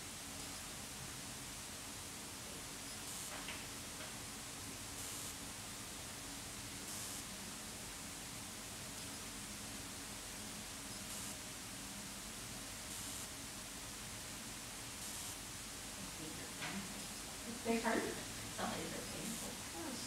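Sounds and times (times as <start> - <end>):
background hiss: 0.0 - 20.0.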